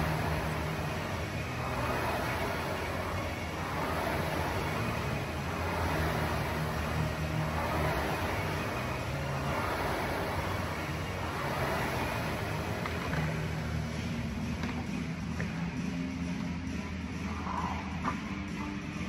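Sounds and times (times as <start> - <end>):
rowing machine fan whirring: 0.0 - 19.0.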